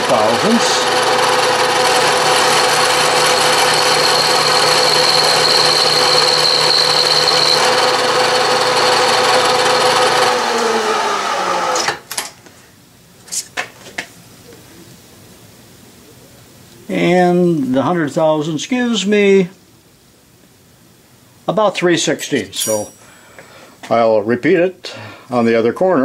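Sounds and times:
milling machine cutting metal: 0.0 - 12.0
spindle winding down: 0.0 - 12.0.

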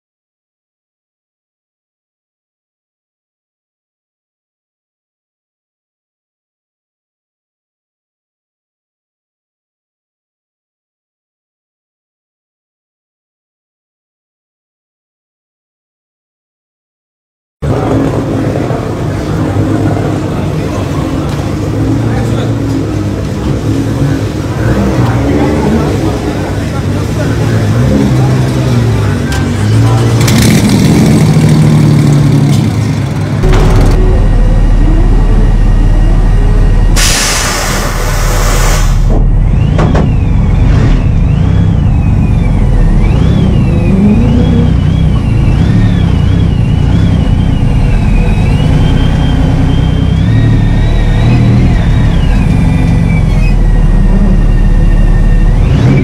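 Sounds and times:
race car engine revving: 17.6 - 56.0
loud hiss: 37.0 - 39.1.

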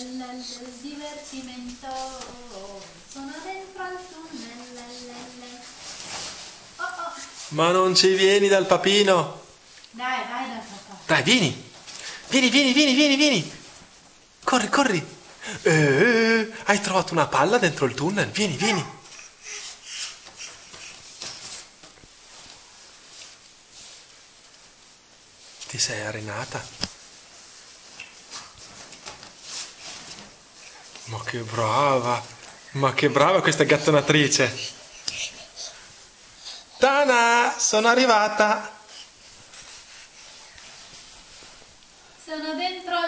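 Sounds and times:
nylon fabric rustling: 0.0 - 8.6, 20.2 - 35.1
faint steady hiss: 0.0 - 43.0.

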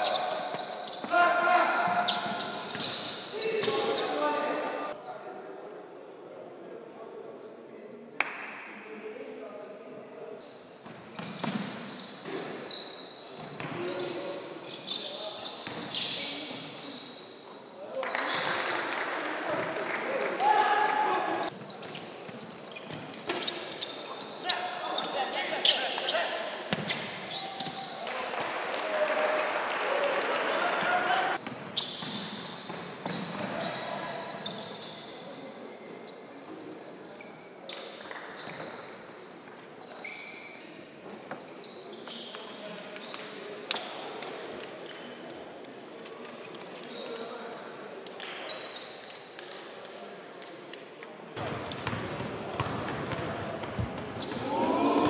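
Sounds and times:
court noise: 0.0 - 5.0, 8.2 - 9.0, 10.8 - 55.0
players' voices: 0.0 - 10.5, 12.2 - 31.4, 41.0 - 55.0
basketball bouncing: 51.4 - 54.0.

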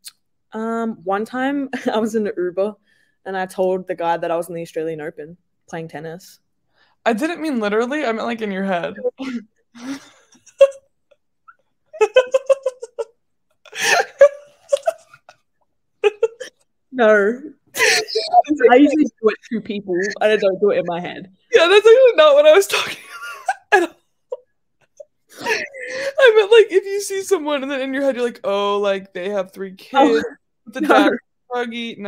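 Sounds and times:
woman laughing breathily: 12.0 - 13.1, 13.7 - 15.3, 16.0 - 16.6, 17.8 - 18.5, 25.3 - 26.3
woman squealing with laughter: 12.0 - 13.1, 17.8 - 18.5
drawn-out whining voice: 17.8 - 20.9.

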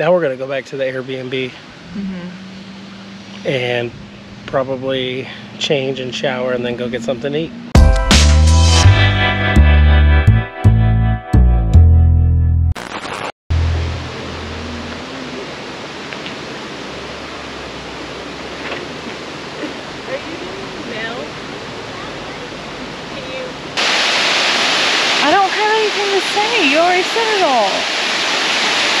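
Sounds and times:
woman talking: 2.0 - 2.5, 20.0 - 22.5, 23.1 - 23.6, 25.2 - 27.8
waterfall rushing: 2.5 - 3.9, 13.7 - 29.0.

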